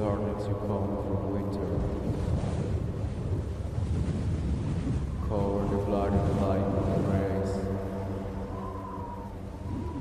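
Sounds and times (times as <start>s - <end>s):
low wind-like synth rumble: 0.0s - 10.0s.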